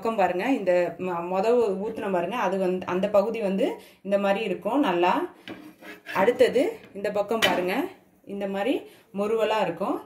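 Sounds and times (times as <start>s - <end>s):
metal spatula scraping griddle: 5.4s - 6.6s.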